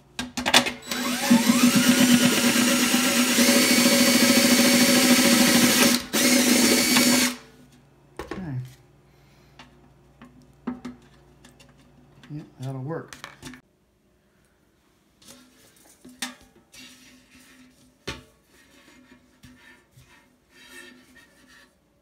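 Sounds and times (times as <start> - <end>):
cordless drill grinding through metal: 0.8 - 7.4.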